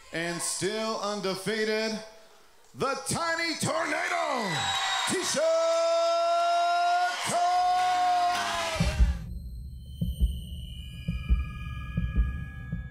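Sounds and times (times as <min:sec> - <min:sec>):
ring announcer calling out: 0:02.8 - 0:08.9
outro music with deep thumps: 0:08.5 - 0:12.9.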